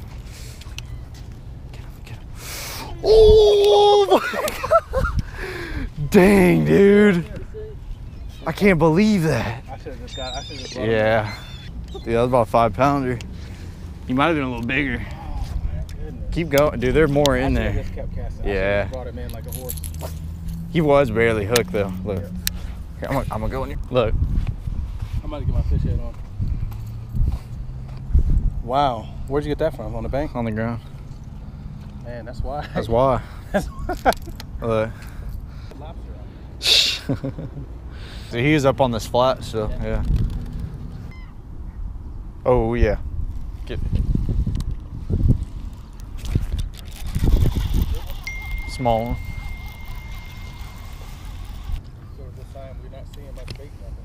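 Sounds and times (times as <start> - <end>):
wind rumble: 22.7 - 28.8, 39.7 - 51.9
microphone handling noise: 39.9 - 41.2
fishing reel being cranked: 46.2 - 51.8
thin high whine: 48.2 - 51.8.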